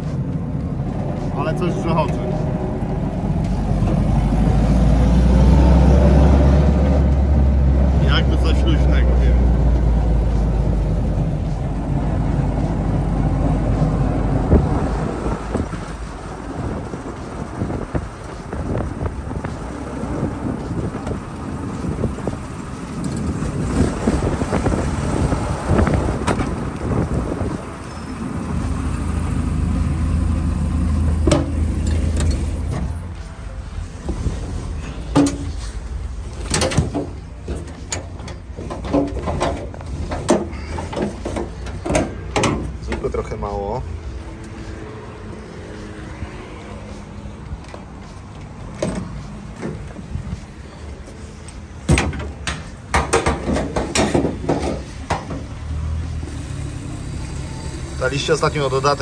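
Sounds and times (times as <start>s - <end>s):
vehicle engines rumbling: 0.0s - 59.0s
sharp knocks and clatters: 31.2s - 32.9s, 36.4s - 43.1s, 51.8s - 55.5s.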